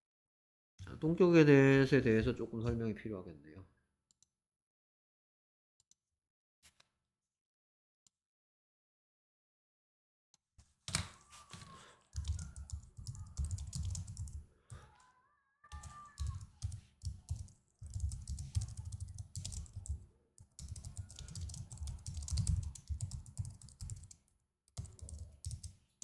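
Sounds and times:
typing on computer keyboard: 12.1s - 14.8s, 15.7s - 25.8s.

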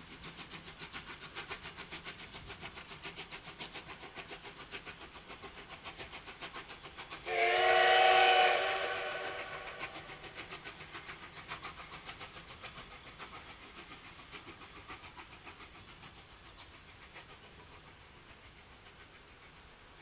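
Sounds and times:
steam locomotive chuffing: 0.0s - 20.0s
steam whistle blast: 7.3s - 10.0s.

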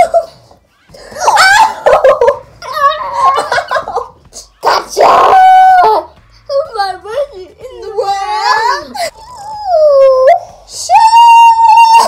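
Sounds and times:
woman wailing in high voice: 7.6s - 12.0s.

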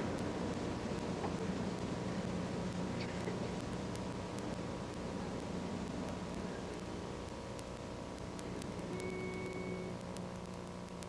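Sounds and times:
analog recording hum and hiss: 0.0s - 11.0s
faint short tone: 8.8s - 10.0s.

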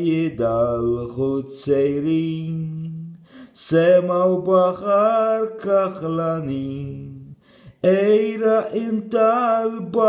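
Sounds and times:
man singing long notes: 0.0s - 10.0s.

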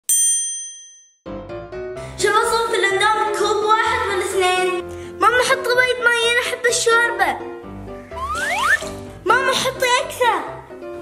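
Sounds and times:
background music: 1.3s - 11.0s.

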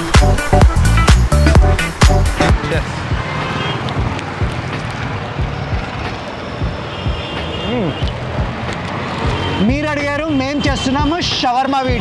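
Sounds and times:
music with low beat: 0.0s - 3.3s, 3.9s - 10.0s
passing cars: 1.8s - 12.0s
motorbikes: 2.3s - 12.0s.

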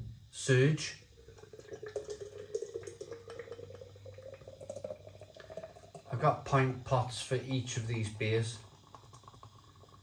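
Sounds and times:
beer splashing and fizzing: 0.5s - 10.0s.

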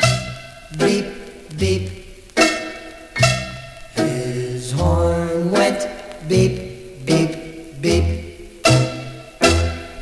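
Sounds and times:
rock and roll record playing: 0.0s - 10.0s
sharp accented chords: 7.0s - 10.0s.

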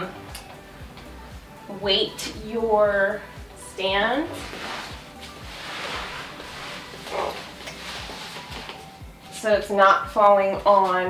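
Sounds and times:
footsteps: 4.4s - 9.4s.

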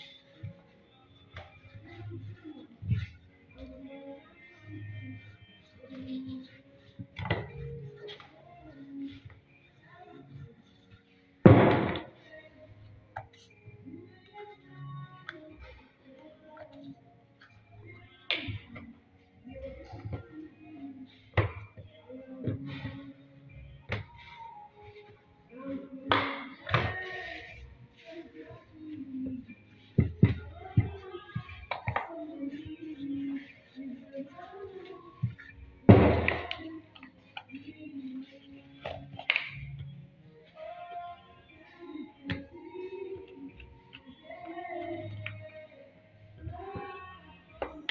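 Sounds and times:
background music with singing: 0.0s - 47.9s.

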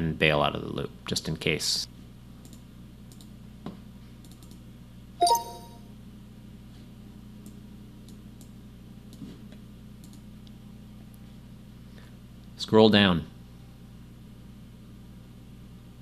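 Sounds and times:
computer mouse clicks: 2.4s - 3.3s, 4.2s - 4.6s, 10.0s - 10.2s
two-note electronic chime: 5.2s - 5.9s.

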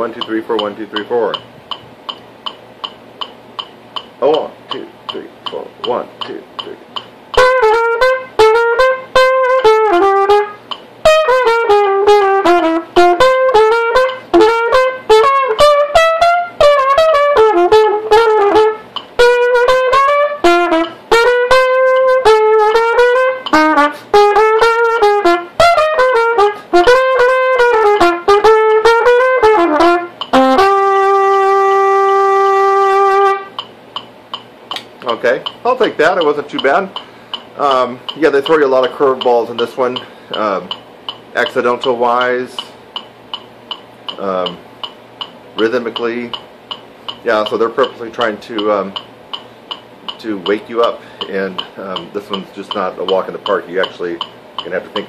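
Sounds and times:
trumpet playing swung jazz phrases: 0.0s - 1.4s, 7.4s - 33.6s, 35.1s - 37.0s, 37.6s - 40.8s, 41.4s - 42.8s, 45.6s - 46.4s, 47.2s - 49.0s, 50.2s - 55.0s
metronome ticking: 0.0s - 55.0s
player breathing: 37.0s - 37.5s, 40.0s - 40.4s, 51.0s - 51.3s.

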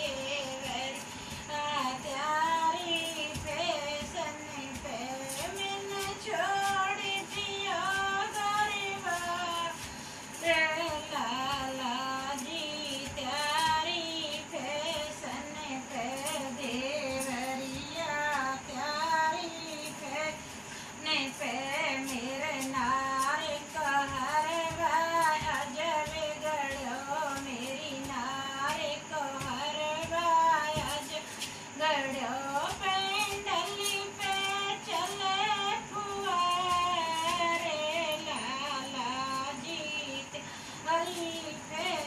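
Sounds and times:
person singing folk song: 0.0s - 42.0s.

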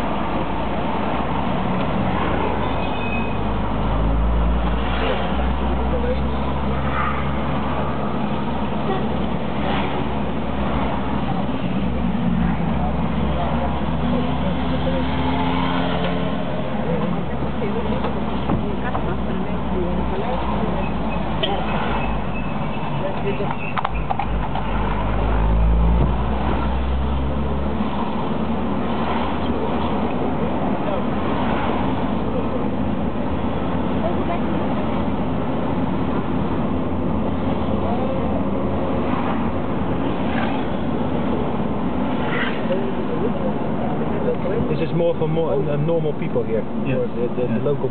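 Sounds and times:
car engine hum and road noise: 0.0s - 47.9s.

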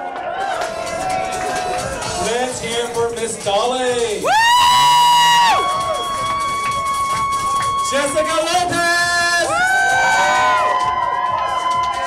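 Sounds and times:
background music: 0.0s - 12.0s
crowd chatter: 0.0s - 12.0s
shrill whoop: 4.2s - 8.6s, 9.4s - 12.0s.

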